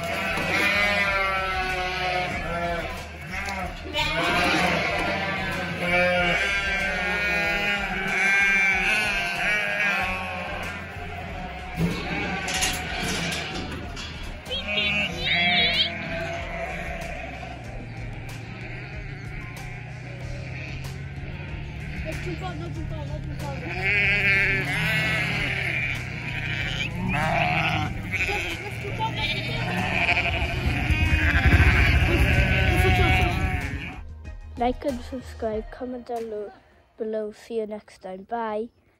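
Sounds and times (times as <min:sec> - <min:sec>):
sheep bleating: 0:00.0 - 0:34.0
background music: 0:00.0 - 0:38.8
low rumble: 0:25.8 - 0:34.2.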